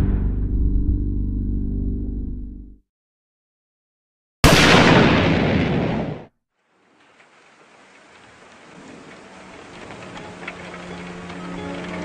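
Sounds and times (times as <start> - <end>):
loud blast sound effect: 4.4 - 6.3
rain-like hiss with patters: 6.6 - 12.0
music intro held notes: 9.8 - 12.0.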